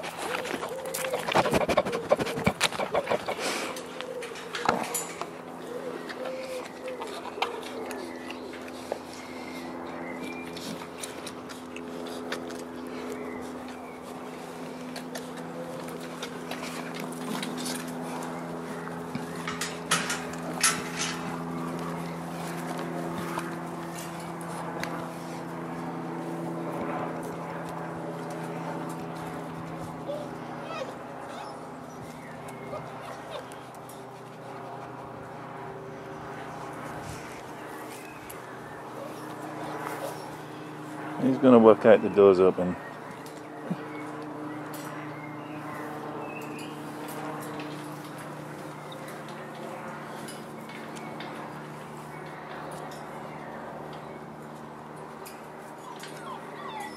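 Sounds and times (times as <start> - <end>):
puppies whimpering: 0.0 - 22.6, 30.0 - 34.9, 55.6 - 56.9
steady low hum: 0.0 - 56.9.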